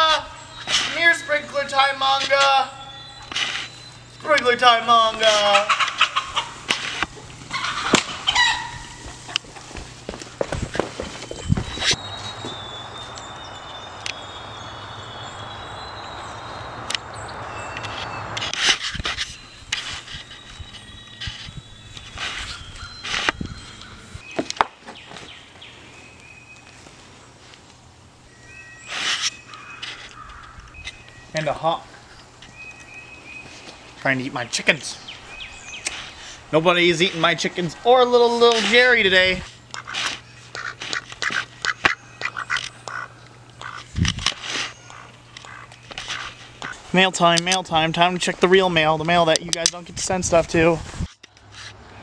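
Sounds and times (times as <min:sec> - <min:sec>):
chickens and birds calling: 0:00.0 - 0:47.0
sharp clicks: 0:16.8 - 0:19.9.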